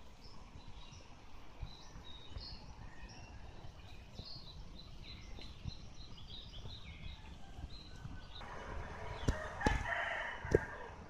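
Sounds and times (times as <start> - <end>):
small birds chirping: 0.0 - 11.0
sharp knocks: 9.2 - 9.9.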